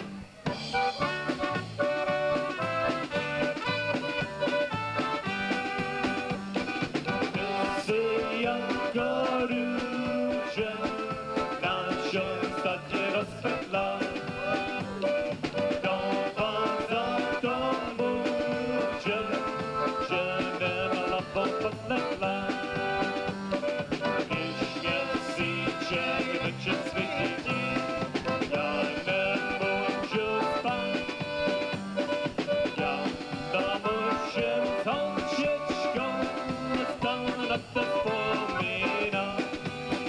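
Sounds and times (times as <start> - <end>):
dance band playing: 0.0 - 40.0
electric guitar: 0.0 - 40.0.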